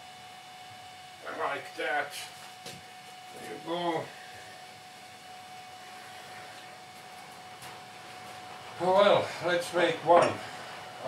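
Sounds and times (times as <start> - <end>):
background hum: 0.0 - 11.0
faint whine: 0.0 - 11.0.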